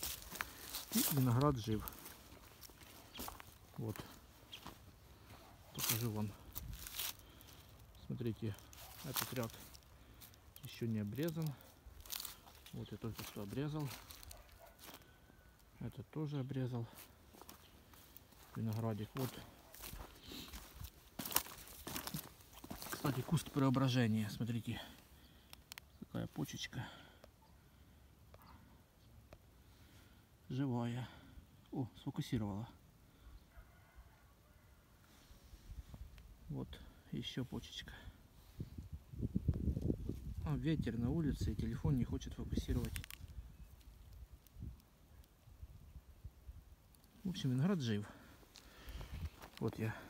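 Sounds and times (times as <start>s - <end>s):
footsteps crackling on dry canes: 0.0s - 15.7s, 16.8s - 25.9s, 42.5s - 44.5s, 48.0s - 50.0s
wind buffeting microphone: 38.6s - 40.5s.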